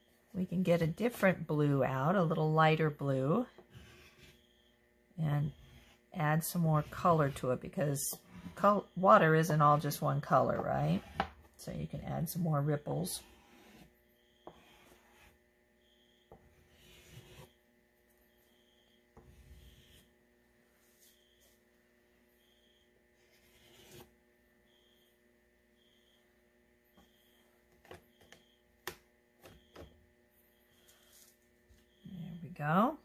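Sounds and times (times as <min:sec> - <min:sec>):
faint electrical hum: 0:00.0 - 0:33.0
oil pastel rubbing on paper: 0:05.5 - 0:08.8.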